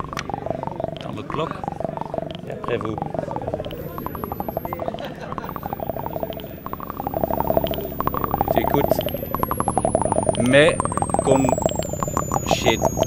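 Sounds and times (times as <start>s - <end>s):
high whine falling in pitch: 0.0s - 13.0s
synth pings with echoes: 0.0s - 13.0s.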